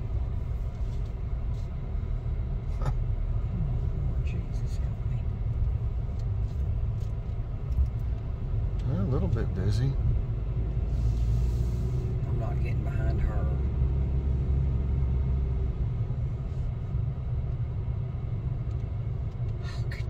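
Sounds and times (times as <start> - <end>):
car engine and tyre rumble: 0.0 - 20.0.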